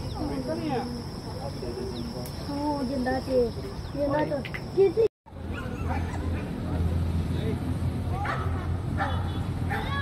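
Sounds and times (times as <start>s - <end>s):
dog barking: 8.2s - 10.0s.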